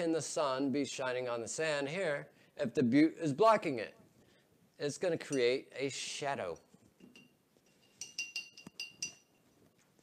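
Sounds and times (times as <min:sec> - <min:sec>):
hard object clinking against glass: 0:06.6 - 0:09.5.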